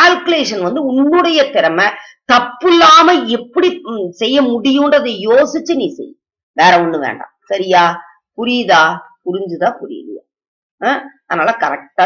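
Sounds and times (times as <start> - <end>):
woman talking: 0.0 - 10.2, 10.8 - 12.0.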